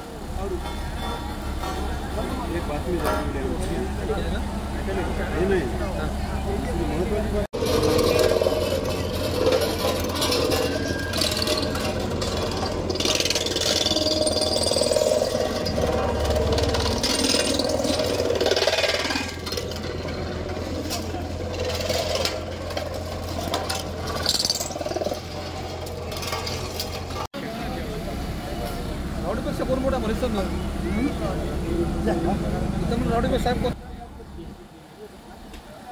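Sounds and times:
road roller diesel engine: 0:00.0 - 0:35.9.

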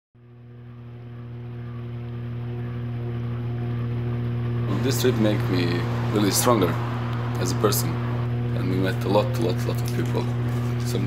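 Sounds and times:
boat engine droning: 0:01.2 - 0:11.0.

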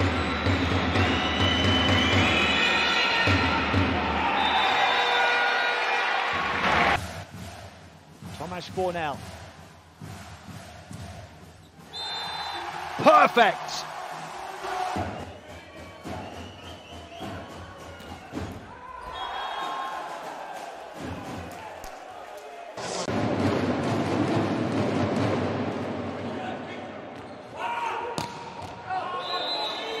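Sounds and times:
loud crowd cheer: 0:00.0 - 0:07.6, 0:11.9 - 0:23.2, 0:27.5 - 0:30.0
crowd noise: 0:00.0 - 0:08.9, 0:09.8 - 0:27.6.

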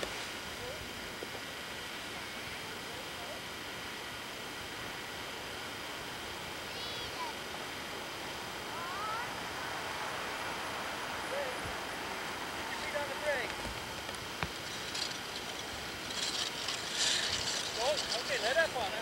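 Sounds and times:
camcorder hiss: 0:00.0 - 0:19.0
faint high calls: 0:08.7 - 0:13.9.

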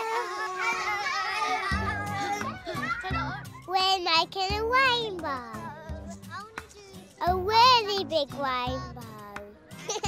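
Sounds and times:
loud child's voice: 0:00.0 - 0:09.5
children's voices and chatter: 0:00.0 - 0:09.8
background music with bass line: 0:01.3 - 0:10.0.

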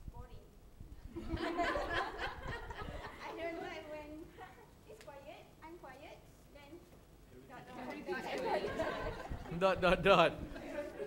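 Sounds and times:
several voices talking: 0:03.1 - 0:11.0.

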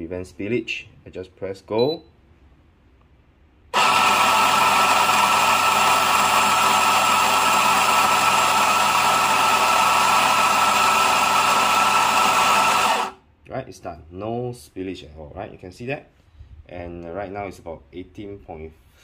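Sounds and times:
coffee grinder motor grinding: 0:03.8 - 0:13.2.

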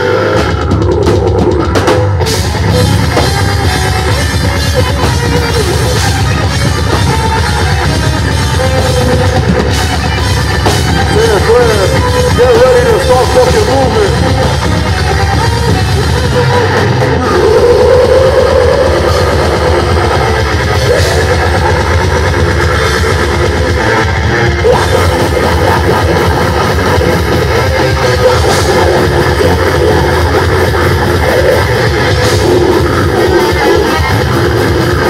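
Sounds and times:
bass guitar: 0:00.0 - 0:35.0
distorted electric guitars: 0:00.0 - 0:35.0
drum kit: 0:00.0 - 0:35.0
vocalist screaming: 0:16.0 - 0:35.0.

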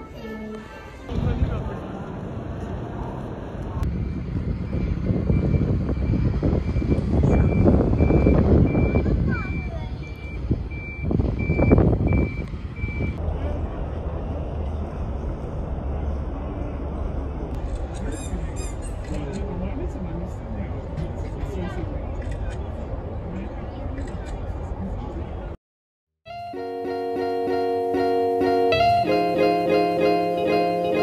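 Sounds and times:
loud outdoor rushing noise: 0:01.1 - 0:08.0
vehicle reversing alarm beeping: 0:03.9 - 0:13.2.

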